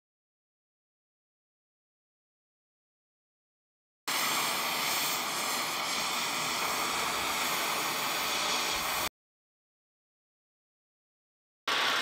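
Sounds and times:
gas cutting torch hissing: 0:04.1 - 0:09.1, 0:11.7 - 0:12.0.

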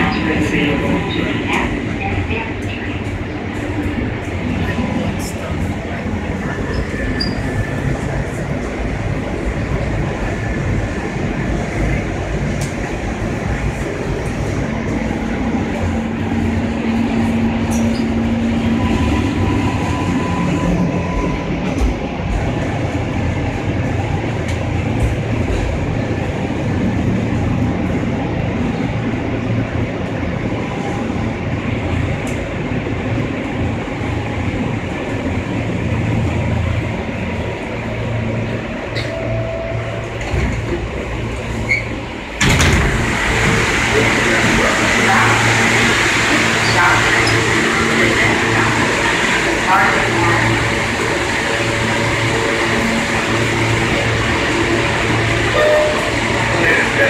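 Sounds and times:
subway train rumbling: 0:00.0 - 0:57.0
train doors opening: 0:16.4 - 0:22.7, 0:38.5 - 0:51.0, 0:51.8 - 0:57.0.

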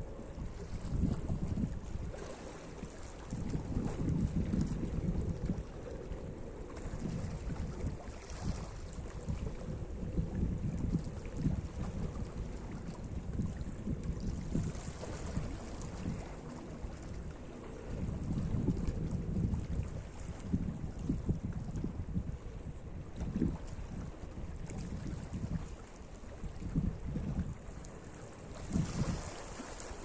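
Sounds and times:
wind rumbling on microphone: 0:00.0 - 0:30.0
waves lapping on rocks: 0:28.2 - 0:30.0.

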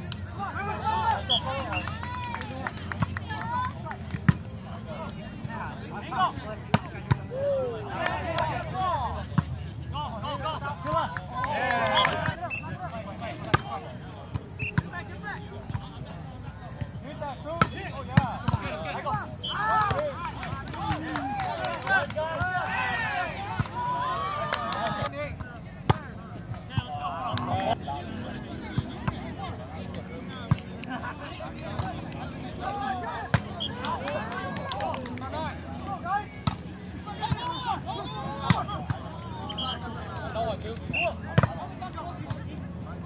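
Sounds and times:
players calling and shouting: 0:00.0 - 0:43.0.

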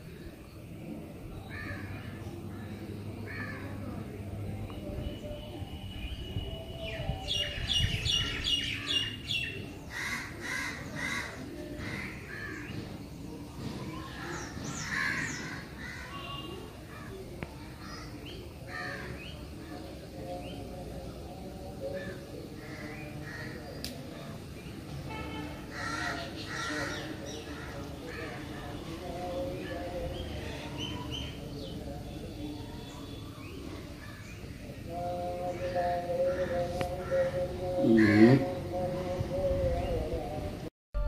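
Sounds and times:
birds chirping and calling: 0:00.0 - 0:40.3.

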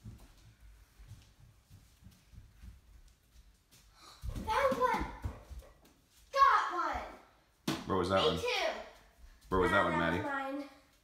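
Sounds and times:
child's excited voice: 0:04.2 - 0:05.4, 0:06.3 - 0:07.3, 0:08.2 - 0:10.8.

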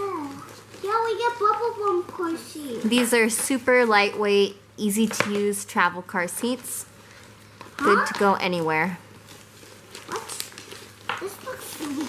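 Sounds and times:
plastic wrapping rustling: 0:00.0 - 0:04.2, 0:06.3 - 0:12.0.

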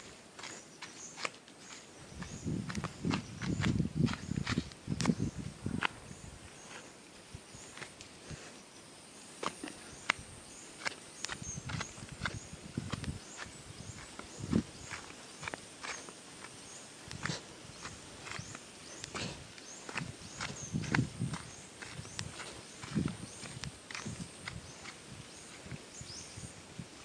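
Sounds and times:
footsteps on dirt path: 0:00.0 - 0:08.6, 0:10.8 - 0:27.0.

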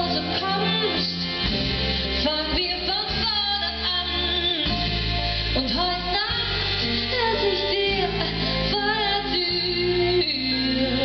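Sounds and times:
woman singing a slow song: 0:00.0 - 0:01.5, 0:02.2 - 0:11.0
instrumental accompaniment: 0:00.0 - 0:11.0.

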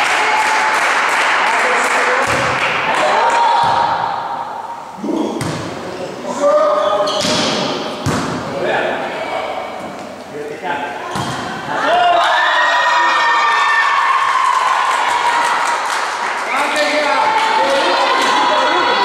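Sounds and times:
volleyball hits ringing in hall: 0:00.0 - 0:05.8, 0:07.0 - 0:08.6, 0:11.0 - 0:12.0
players shouting: 0:16.9 - 0:19.0.

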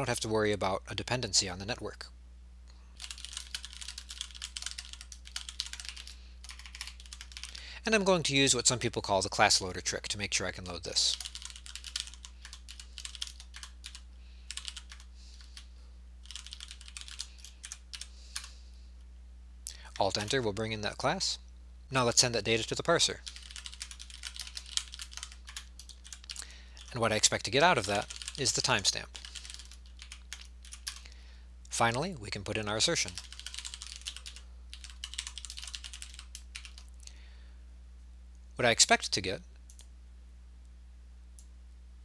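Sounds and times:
low steady hum: 0:00.0 - 0:42.0
typing on computer keyboard: 0:03.0 - 0:07.6, 0:11.1 - 0:15.6, 0:16.2 - 0:18.5, 0:23.2 - 0:26.9, 0:27.8 - 0:28.5, 0:29.2 - 0:31.0, 0:33.1 - 0:36.9.

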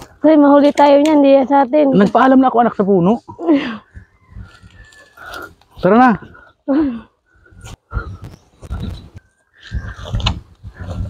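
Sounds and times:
dry fronds rustling and scraping: 0:04.2 - 0:05.9.

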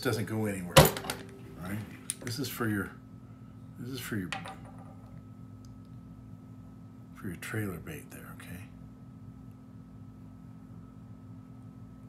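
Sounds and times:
low hum: 0:00.0 - 0:07.1.

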